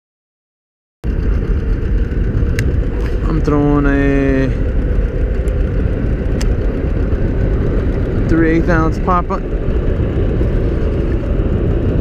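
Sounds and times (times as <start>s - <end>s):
wind buffeting microphone: 1.0s - 12.0s.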